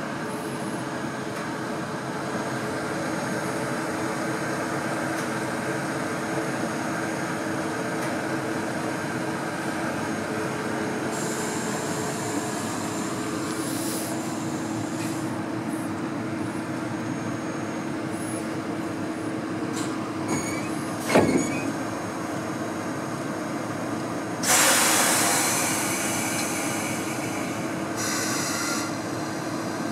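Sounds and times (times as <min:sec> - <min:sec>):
locomotive machinery humming: 0:00.0 - 0:29.9
brief high squeaks: 0:20.3 - 0:21.8.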